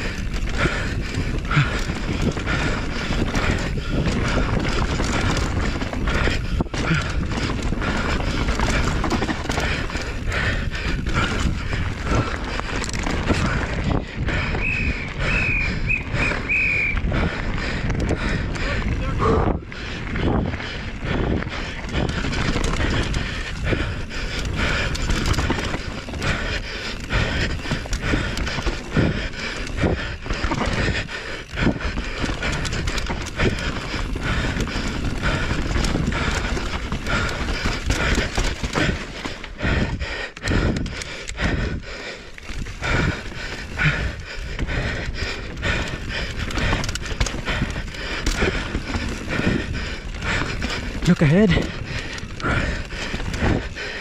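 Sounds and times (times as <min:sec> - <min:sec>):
bike knocks and rattles: 0:00.0 - 0:14.2, 0:20.2 - 0:41.0
bike tyres on dirt: 0:00.0 - 0:54.0
rider breathing hard: 0:00.0 - 0:54.0.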